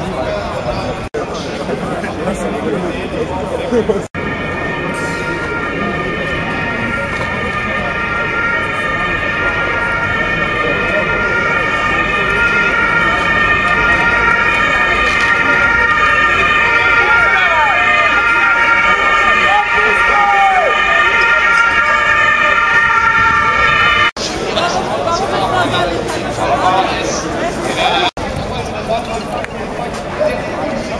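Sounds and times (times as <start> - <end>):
crowd chatter: 0.0 - 30.9.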